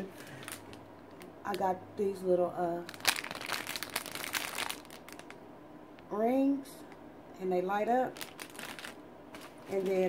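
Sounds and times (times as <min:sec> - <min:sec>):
plastic bag crinkling: 0:00.2 - 0:00.8, 0:02.8 - 0:05.4, 0:08.0 - 0:10.0.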